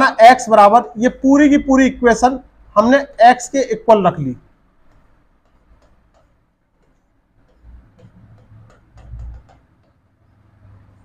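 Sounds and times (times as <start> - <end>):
chalk tapping on blackboard: 4.8 - 10.1.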